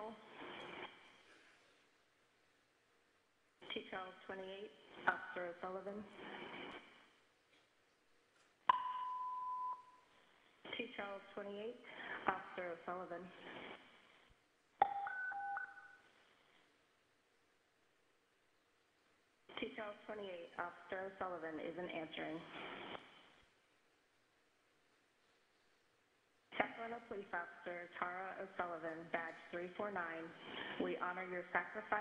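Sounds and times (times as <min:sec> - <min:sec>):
radio channel hiss: 0:00.0 - 0:01.0, 0:06.0 - 0:06.9, 0:22.4 - 0:23.2.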